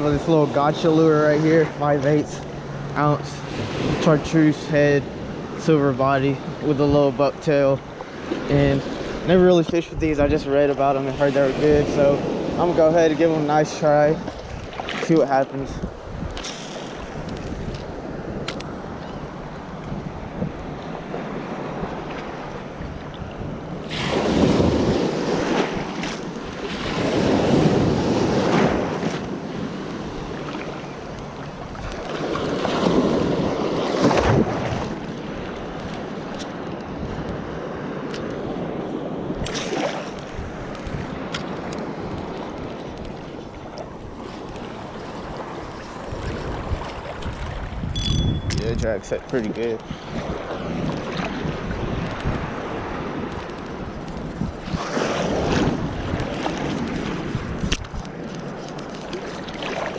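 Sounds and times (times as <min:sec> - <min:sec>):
ocean surf washing: 0:00.0 - 0:59.9
wind buffeting microphone: 0:00.0 - 0:59.9.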